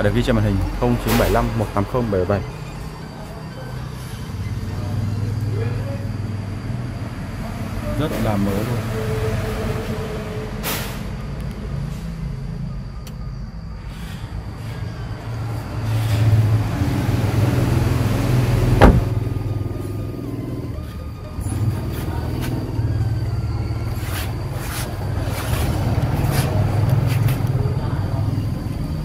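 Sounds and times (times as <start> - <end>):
vehicle rumble: 0.0 - 29.0
truck door shutting: 18.6 - 19.7.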